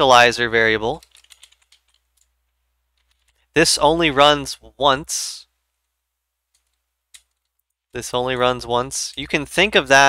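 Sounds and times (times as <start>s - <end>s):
typing on a keyboard: 0.9s - 2.3s, 3.0s - 3.4s, 6.5s - 7.7s.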